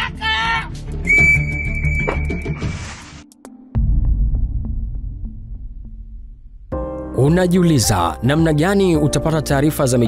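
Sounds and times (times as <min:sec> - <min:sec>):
deep bass boom: 0:03.8 - 0:07.0.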